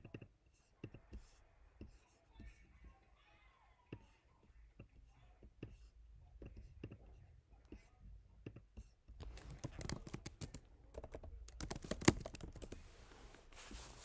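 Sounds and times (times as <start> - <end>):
typing on a computer keyboard: 9.2 - 12.8.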